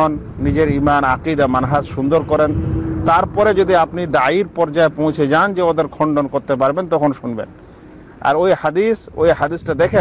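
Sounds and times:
man lecturing: 0:00.0 - 0:07.5, 0:08.2 - 0:10.0.

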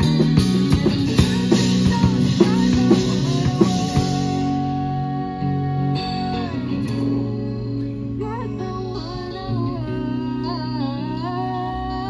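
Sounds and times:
street band playing: 0:00.0 - 0:12.0.

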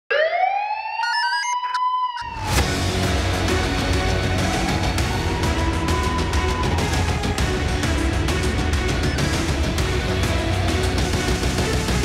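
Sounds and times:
siren-like synth wail: 0:00.1 - 0:08.4
dramatic music with heavy bass: 0:02.3 - 0:12.0.

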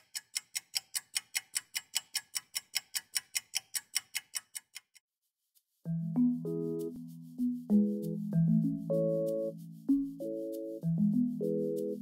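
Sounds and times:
mechanical watch ticking: 0:00.0 - 0:05.0
music: 0:05.8 - 0:12.0.

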